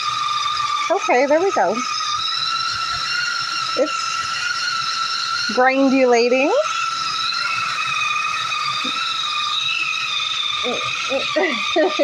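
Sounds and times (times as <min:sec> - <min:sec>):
blender motor whining: 0:00.0 - 0:12.0.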